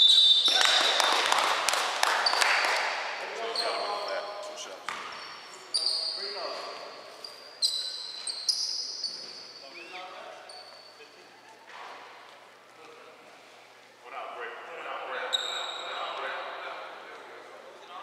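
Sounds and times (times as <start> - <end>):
sneaker squeaks: 0.0 - 0.8, 2.2 - 2.8, 3.4 - 12.4, 15.2 - 16.2
players' voices echoing: 0.0 - 8.1, 9.0 - 18.0.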